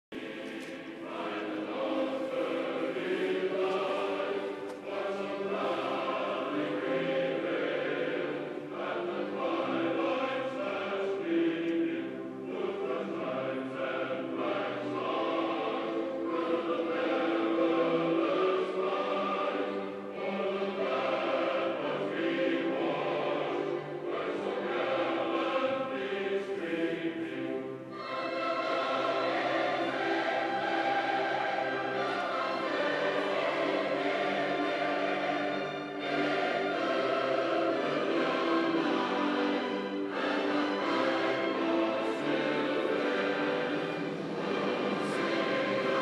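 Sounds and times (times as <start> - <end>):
group singing long notes: 0.1 - 46.0
orchestral accompaniment: 0.2 - 46.0.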